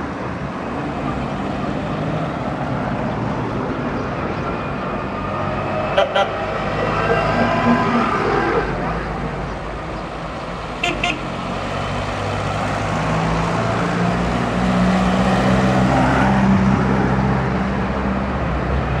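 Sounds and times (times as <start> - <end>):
car horn toots: 10.8 - 11.3.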